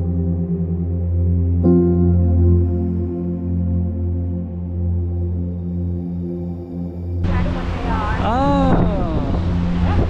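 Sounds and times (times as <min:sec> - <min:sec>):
wind rush: 0:07.2 - 0:10.0
person calling out: 0:08.2 - 0:09.3.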